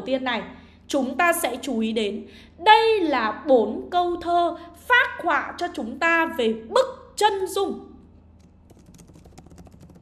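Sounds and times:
computer keyboard typing: 8.3 - 10.0.

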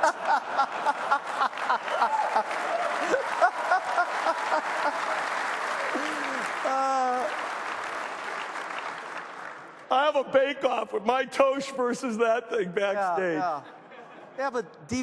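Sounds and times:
audience laughing: 0.0 - 6.6, 13.5 - 14.4
audience applauding: 0.0 - 10.1.

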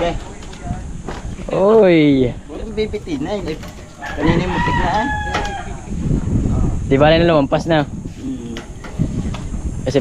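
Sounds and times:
rooster crowing: 3.9 - 5.9.

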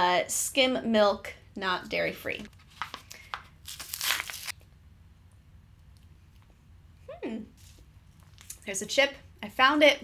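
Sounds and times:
carton crinkling and tearing: 3.6 - 4.5.

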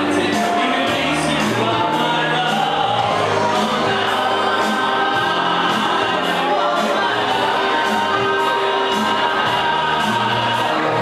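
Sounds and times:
instrumental backing with bass line: 0.0 - 11.0
men singing into microphones: 0.0 - 11.0.

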